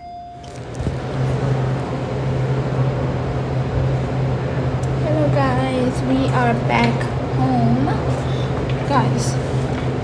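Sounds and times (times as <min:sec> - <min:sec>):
loud steady rumble: 0:00.0 - 0:10.0.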